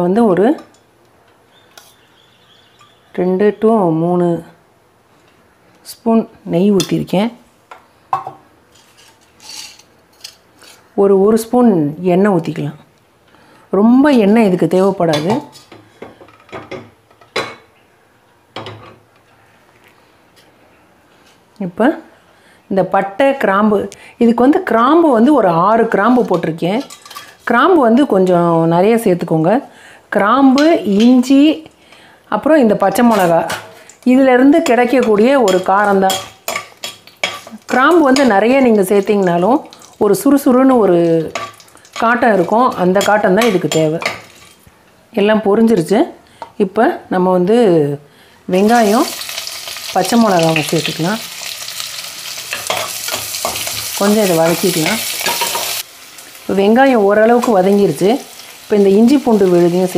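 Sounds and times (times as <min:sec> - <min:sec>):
utensils clinking on metal pot: 0:08.2 - 0:10.8, 0:26.2 - 0:27.5, 0:34.6 - 0:39.8, 0:41.0 - 0:44.6, 0:52.5 - 0:55.8
ladle scraping metal pot: 0:08.7 - 0:10.8.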